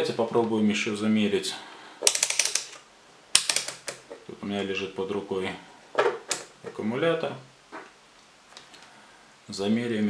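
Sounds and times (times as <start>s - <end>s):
rotary dial detents clicking: 2.0s - 2.8s, 3.4s - 4.0s.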